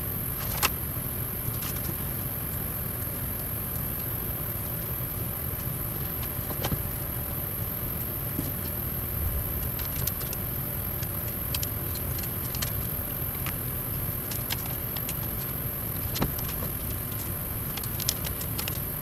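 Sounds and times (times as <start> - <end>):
low room rumble: 0.0 - 19.0.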